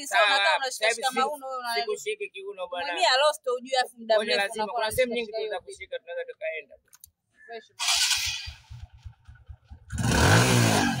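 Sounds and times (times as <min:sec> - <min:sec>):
motorcycle engine idling and revving: 0:07.8 - 0:11.0.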